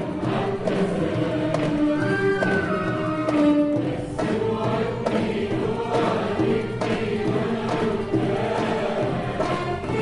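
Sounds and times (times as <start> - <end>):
violins cello and oud ensemble: 0.0 - 5.1, 5.7 - 10.0
choir singing: 0.0 - 10.0.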